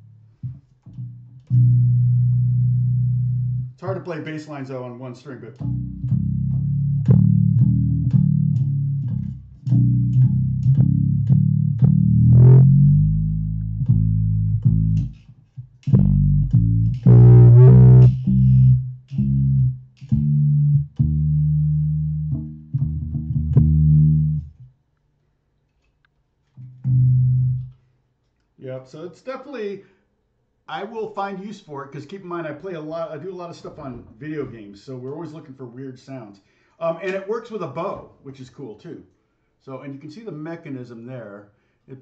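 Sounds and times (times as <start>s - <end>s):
single-string bass line: 0.0s - 4.4s, 5.6s - 24.7s, 26.6s - 27.8s.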